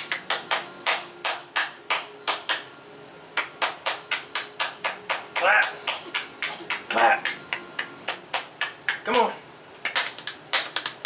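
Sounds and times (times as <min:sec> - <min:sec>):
person clapping hands: 0:00.0 - 0:02.7, 0:03.4 - 0:09.2, 0:09.8 - 0:11.0.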